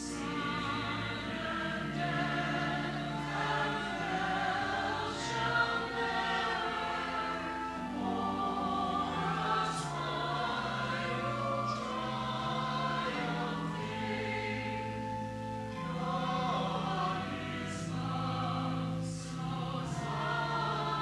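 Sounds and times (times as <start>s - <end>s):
church choir singing: 0.0s - 21.0s
held low accompaniment notes: 0.0s - 21.0s.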